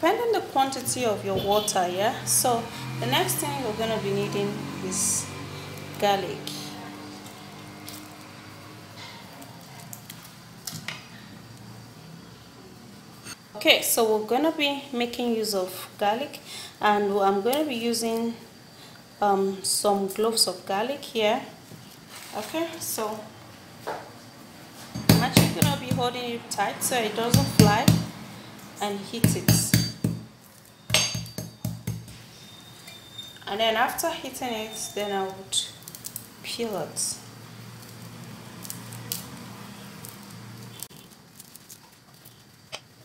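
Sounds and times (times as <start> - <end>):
metal spoon knocking on garlic: 25.0 - 26.1, 27.3 - 28.1, 29.2 - 30.3, 30.9 - 32.1.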